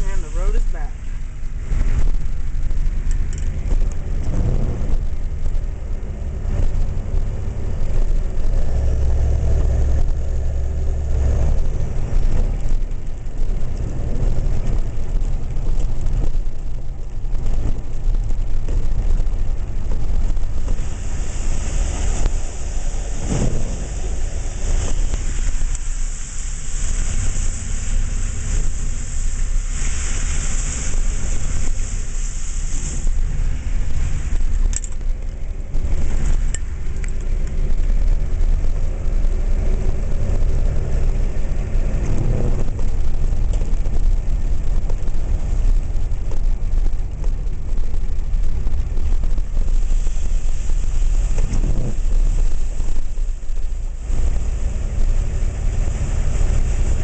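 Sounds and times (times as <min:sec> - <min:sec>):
high hissing rush: 0:00.0 - 0:01.5, 0:20.2 - 0:34.6, 0:49.6 - 0:57.0
car engine and road rumble: 0:00.0 - 0:57.0.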